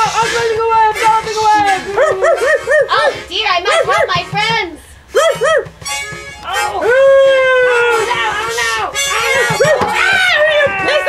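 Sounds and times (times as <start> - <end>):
long held cry: 0.0 - 4.1, 5.1 - 5.8, 6.4 - 11.0
harmonica: 0.0 - 11.0
voices making yapping animal calls: 0.0 - 11.0.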